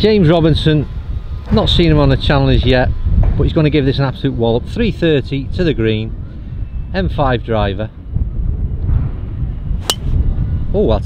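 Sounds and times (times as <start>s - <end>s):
low microphone rumble: 0.0s - 11.0s
golf driver striking ball: 9.8s - 10.2s.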